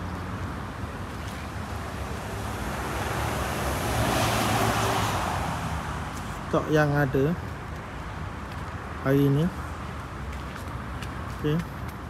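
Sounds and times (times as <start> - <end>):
road vehicle passing: 0.0 - 12.0
traffic hum: 0.0 - 12.0.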